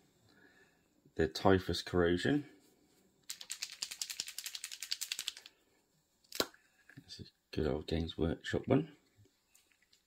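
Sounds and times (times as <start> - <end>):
plastic paint pot rattling: 3.3 - 5.5.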